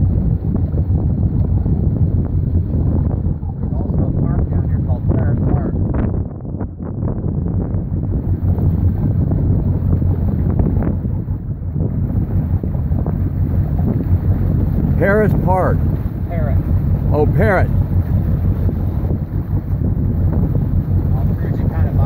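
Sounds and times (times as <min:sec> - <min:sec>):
motorboat engine rumbling: 0:00.0 - 0:22.0
water along hull: 0:00.0 - 0:22.0
wind buffeting microphone: 0:00.0 - 0:22.0.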